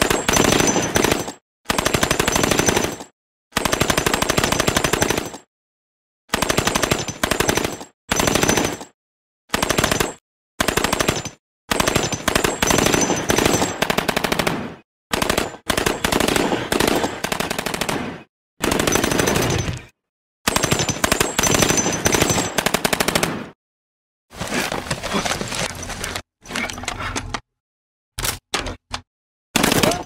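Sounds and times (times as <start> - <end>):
submachine gun automatic bursts: 0.0 - 3.0, 3.6 - 5.4, 6.3 - 8.8, 9.5 - 19.6.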